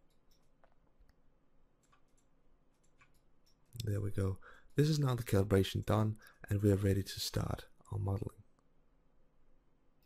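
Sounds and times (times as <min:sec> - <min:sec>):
mouse and keyboard clicks: 0:01.8 - 0:03.9.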